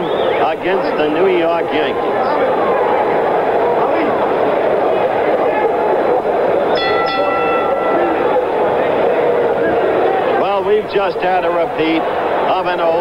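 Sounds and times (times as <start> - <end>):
crowd hubbub: 0.0 - 13.0.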